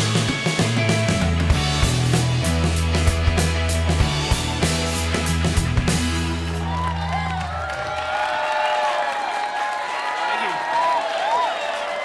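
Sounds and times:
electric guitars and bass chord: 0:00.0 - 0:07.4
audience clapping: 0:05.1 - 0:12.0
audience cheering and whooping: 0:06.3 - 0:12.0.

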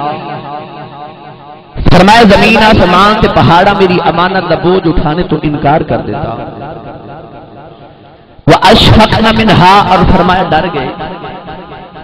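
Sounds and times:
man preaching over loudspeaker: 0:00.0 - 0:12.0.

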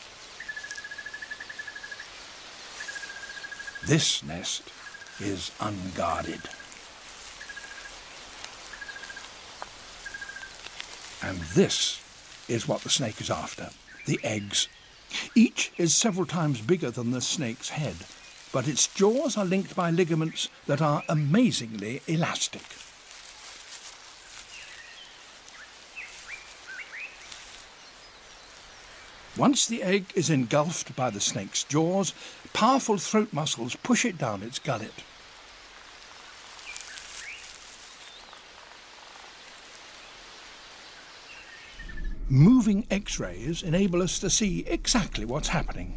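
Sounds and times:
insect chirping trills: 0:00.0 - 0:15.5, 0:16.2 - 0:21.4, 0:35.0 - 0:45.9
faint steady hiss: 0:00.0 - 0:45.9.

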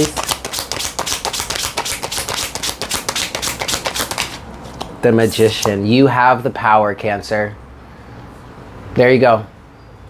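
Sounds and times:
cards being shuffled: 0:00.0 - 0:05.7.

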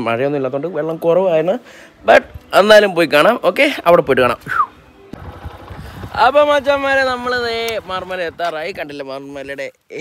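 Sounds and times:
motorcycle engine running: 0:05.2 - 0:08.8.

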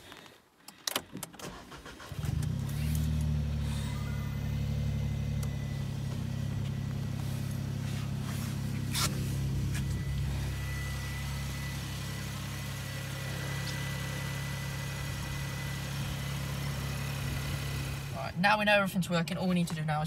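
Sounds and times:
car engine idling: 0:01.4 - 0:20.0.

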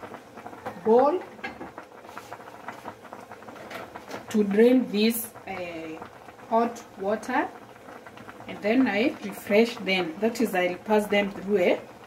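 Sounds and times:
water boiling with bubbling pops: 0:00.0 - 0:12.0.

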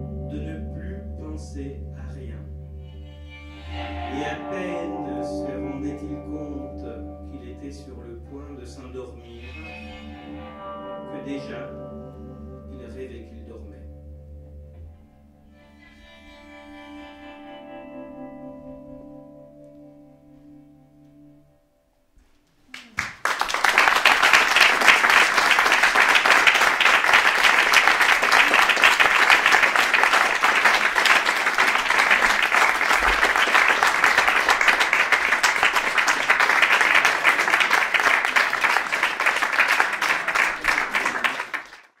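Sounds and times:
audience applauding: 0:22.7 - 0:42.0.

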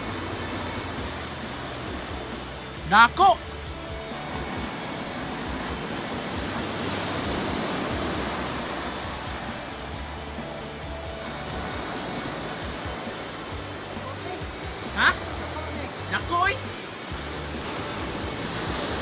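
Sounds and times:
low background music: 0:00.0 - 0:19.0
ocean surf washing onto beach: 0:00.0 - 0:19.0.

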